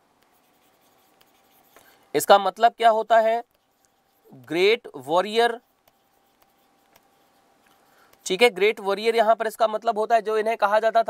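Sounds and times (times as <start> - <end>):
stylus scratching on pen tablet: 0.2 - 9.0.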